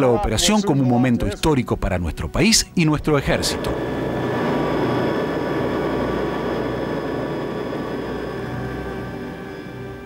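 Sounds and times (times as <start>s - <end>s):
aircraft engine drone: 3.1s - 10.0s.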